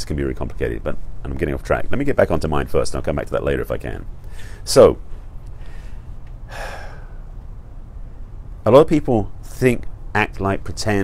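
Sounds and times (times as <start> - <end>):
man talking: 0.0 - 5.1, 8.6 - 11.0
steady low hum: 0.0 - 11.0
man breathing: 4.2 - 4.7, 5.4 - 7.4.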